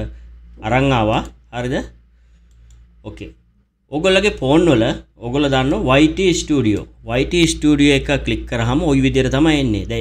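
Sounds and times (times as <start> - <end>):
computer mouse clicks: 2.4 - 2.9
man speaking: 3.0 - 10.0.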